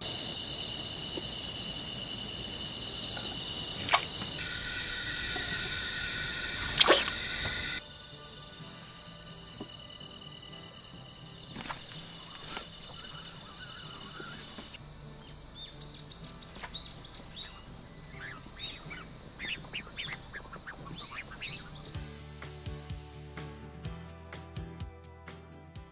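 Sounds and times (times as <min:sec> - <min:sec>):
faint high trill: 0:00.0 - 0:14.8
quick chirping animal calls: 0:01.8 - 0:07.8, 0:12.2 - 0:14.8, 0:15.6 - 0:22.0.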